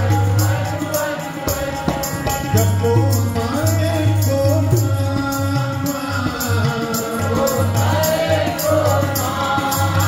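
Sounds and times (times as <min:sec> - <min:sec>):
group of voices singing: 0:00.0 - 0:10.0
harmonium: 0:00.0 - 0:10.0
tabla strokes: 0:00.0 - 0:10.0.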